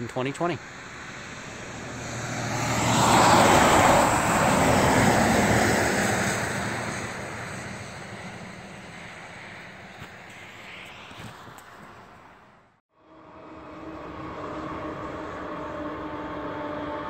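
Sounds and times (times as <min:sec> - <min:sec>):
truck passing by: 0:00.0 - 0:17.0.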